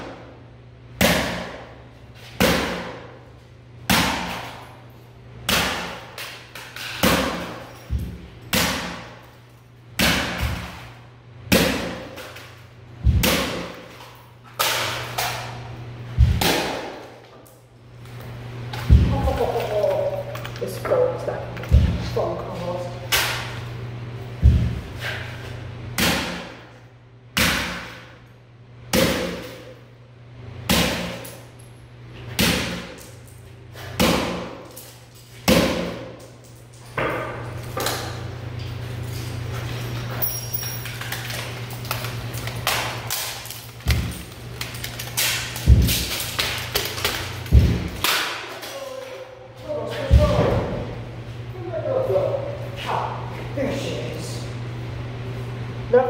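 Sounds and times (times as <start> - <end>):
steady low hum: 0.0 - 56.0
broken pieces knocking and rattling: 19.1 - 21.8, 36.2 - 49.1.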